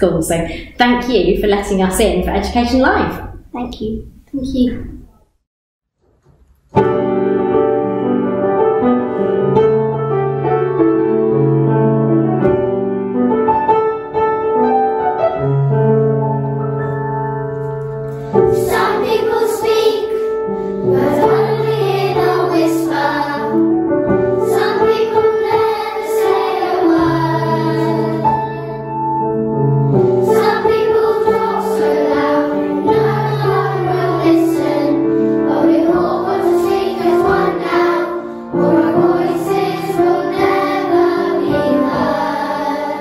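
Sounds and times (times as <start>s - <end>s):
children's choir singing: 18.2s - 29.0s, 29.9s - 43.0s.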